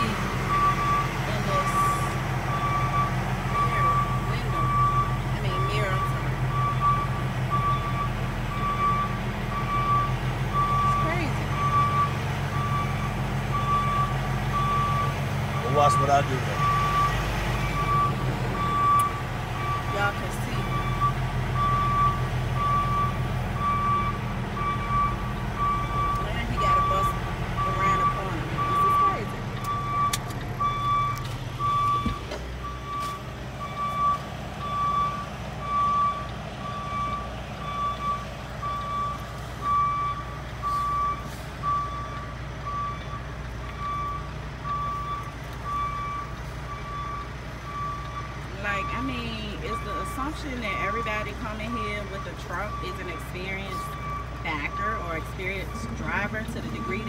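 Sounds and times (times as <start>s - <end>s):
diesel truck engine running: 0.0s - 57.0s
truck reversing alarm beeping: 0.0s - 57.0s.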